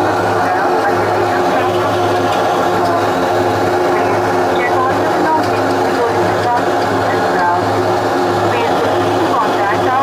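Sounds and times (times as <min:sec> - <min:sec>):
turboprop engines droning in cabin: 0:00.0 - 0:10.0.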